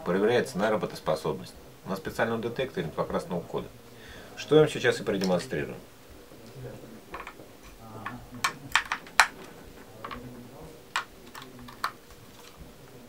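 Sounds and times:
plastic remote clicks and taps: 8.4 - 9.4.

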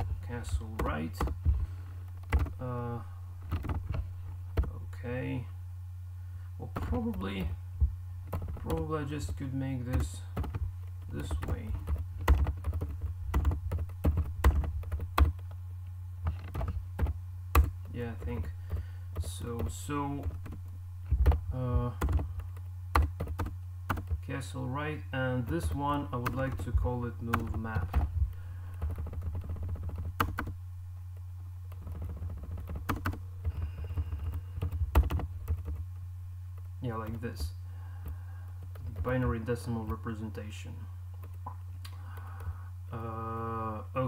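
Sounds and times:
low hum: 0.0 - 44.0
typing on computer keyboard: 2.3 - 2.6, 3.5 - 4.0, 8.3 - 10.6, 11.2 - 15.4, 16.2 - 24.2, 25.6 - 26.7, 27.3 - 28.1, 28.8 - 30.6, 31.7 - 35.8.

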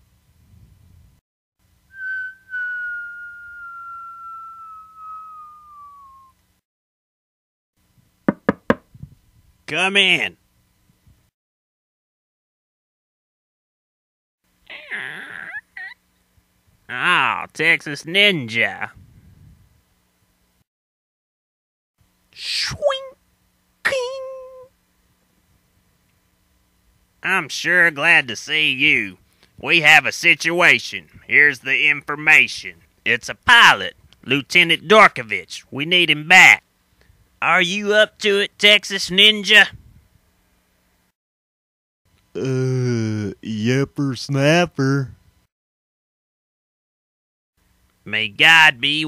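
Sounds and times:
descending whistle: 1.9 - 6.4.

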